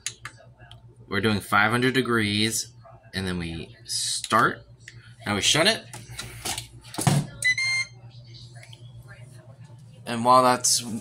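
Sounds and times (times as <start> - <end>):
electronic beep: 7.4 - 8.0.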